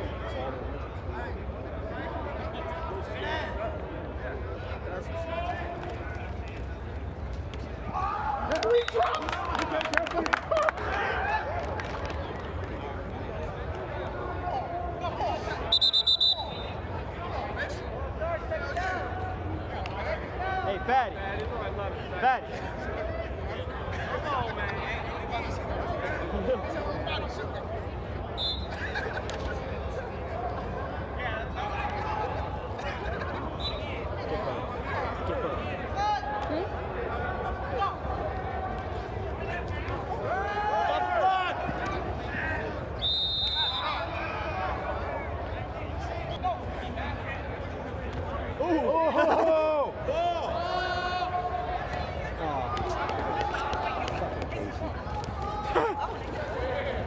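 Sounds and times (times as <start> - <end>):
players' voices and shouts: 0.0 - 57.0
loud shout: 7.9 - 9.8, 40.1 - 42.6, 48.6 - 51.9, 55.1 - 56.8
whistle blast: 15.7 - 16.8, 28.4 - 28.7, 43.0 - 44.0.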